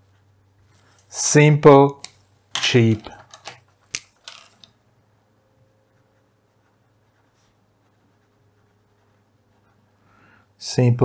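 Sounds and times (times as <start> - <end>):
pencil scratching on paper: 5.8 - 10.2.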